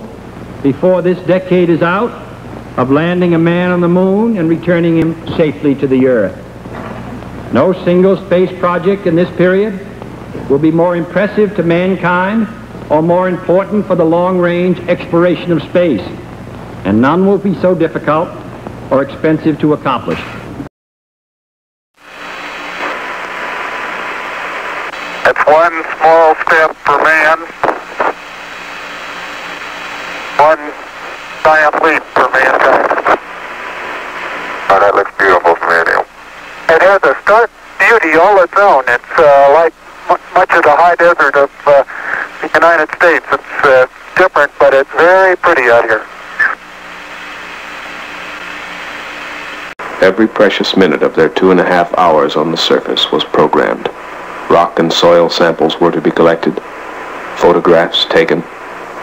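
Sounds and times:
radio static hiss: 0.0s - 20.7s, 22.0s - 59.0s.

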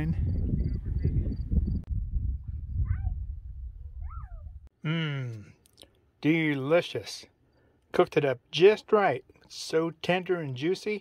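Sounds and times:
wind rumbling on microphone: 0.0s - 4.7s
man humming: 4.8s - 5.6s.

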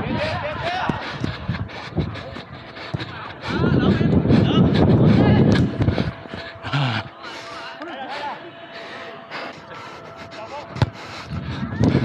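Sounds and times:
wind on microphone: 0.0s - 6.6s, 11.2s - 12.0s.

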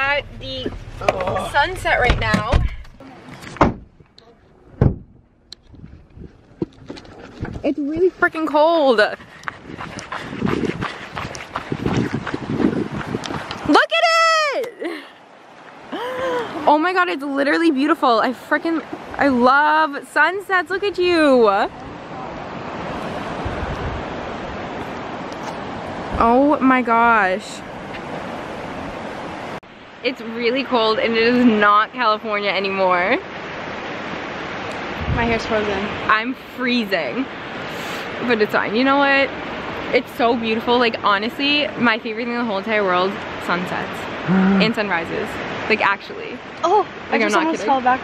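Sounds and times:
wind buffeting microphone: 0.0s - 14.6s, 18.6s - 30.0s, 33.6s - 36.2s
car door thump: 0.6s - 4.0s, 4.8s - 5.2s
small waves washing on shore: 5.6s - 48.0s
wind rushing: 7.2s - 13.9s, 20.5s - 26.4s, 33.3s - 36.2s.

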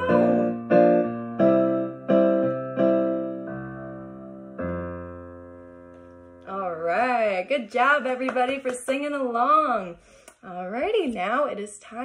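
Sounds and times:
electric piano chord: 0.0s - 6.6s
woman speaking: 6.5s - 12.0s.

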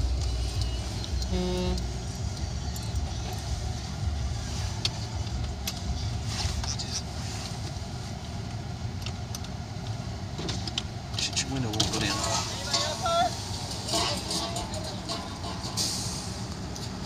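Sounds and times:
car engine idling: 0.0s - 17.0s.

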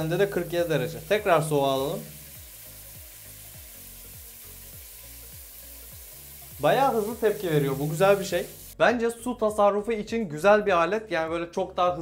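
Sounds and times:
water running from a tap: 0.0s - 8.8s
faint background music: 0.0s - 12.0s.

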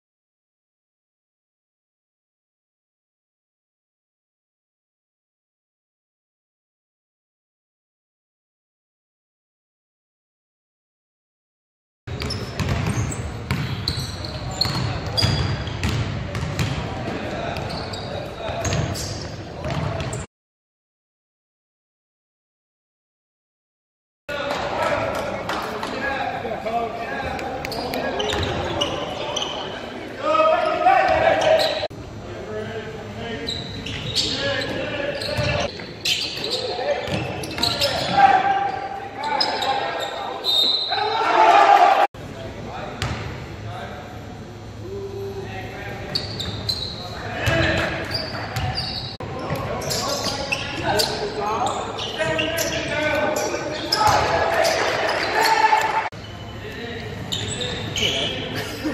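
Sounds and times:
sneaker squeaks: 12.1s - 20.3s, 27.6s - 31.9s, 33.3s - 41.3s, 46.0s - 58.6s
voices in a gym: 16.8s - 20.2s, 24.3s - 58.9s
voices and shouts: 28.0s - 31.9s, 37.7s - 42.1s, 50.8s - 56.1s.

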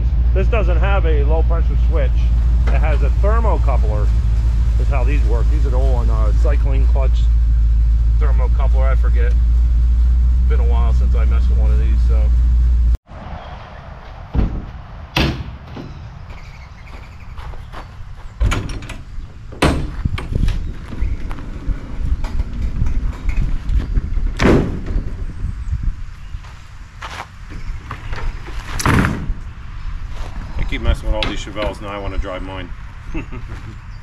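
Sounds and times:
trailer ramp metal clanks: 18.4s - 25.2s.

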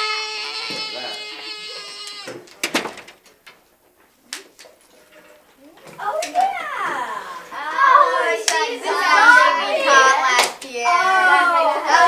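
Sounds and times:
children calling out: 0.0s - 2.4s, 5.6s - 12.0s.

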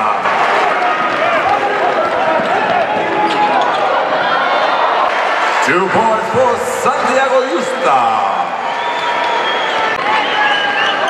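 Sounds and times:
crowd calling out: 0.0s - 11.0s.

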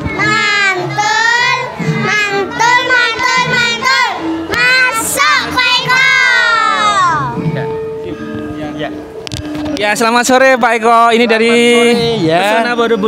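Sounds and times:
children singing in unison: 0.0s - 7.3s.

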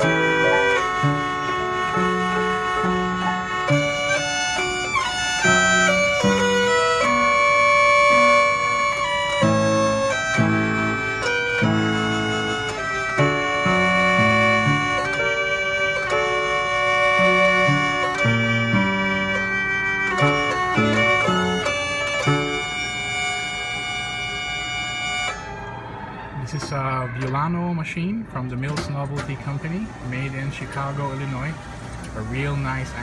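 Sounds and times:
mechanical violin note: 0.0s - 27.5s
piano chords: 0.0s - 33.0s.

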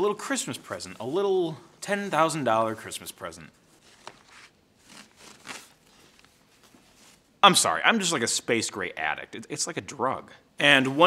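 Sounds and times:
wrapper rustling: 3.6s - 7.3s.

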